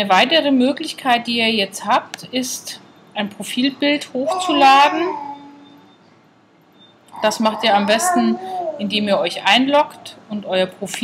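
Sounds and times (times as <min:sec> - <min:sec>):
woman's voice trailing off: 0:04.2 - 0:05.2.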